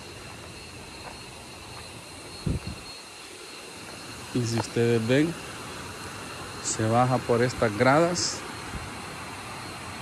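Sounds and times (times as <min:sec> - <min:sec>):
rushing outdoor noise: 0:00.0 - 0:10.0.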